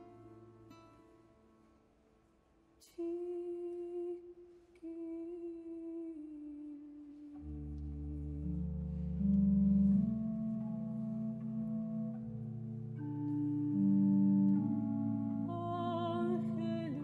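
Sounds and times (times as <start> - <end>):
low sustained instrumental notes: 0.0 - 17.0
soprano singing long notes: 2.9 - 17.0.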